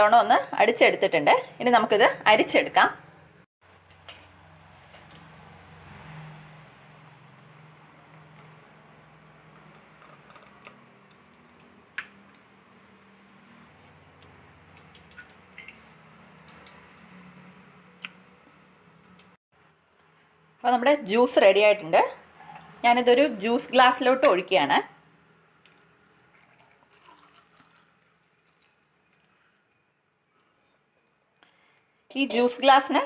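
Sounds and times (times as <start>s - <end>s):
juice pouring and dripping: 6.8s - 19.4s, 25.6s - 29.9s.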